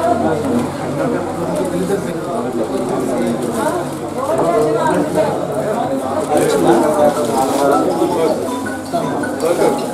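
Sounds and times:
crowd chatter: 0.0s - 9.9s.

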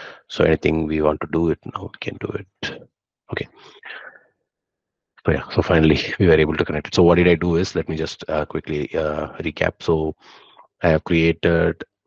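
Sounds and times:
man speaking: 0.0s - 4.2s, 5.3s - 11.8s.

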